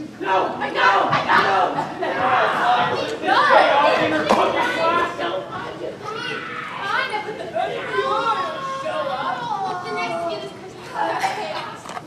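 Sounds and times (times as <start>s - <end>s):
people shouting and yelling: 0.2s - 10.3s.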